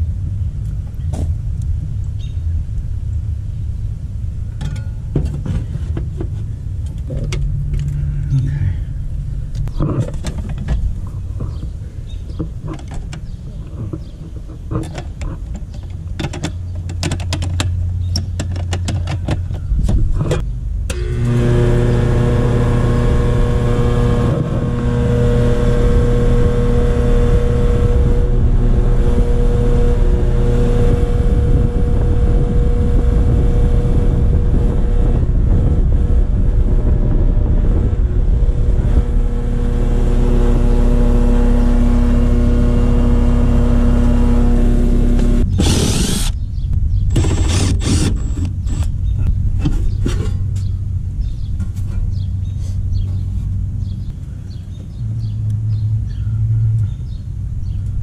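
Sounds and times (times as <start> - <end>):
air conditioner humming: 18.7 - 51.6.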